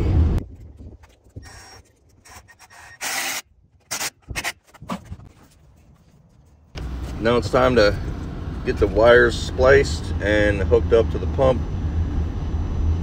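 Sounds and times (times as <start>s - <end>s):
cordless drill bursts: 2.5s - 4.1s.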